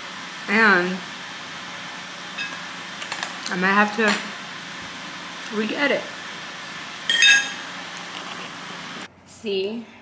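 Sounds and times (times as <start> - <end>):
bright ringing clink: 7.1 - 7.6.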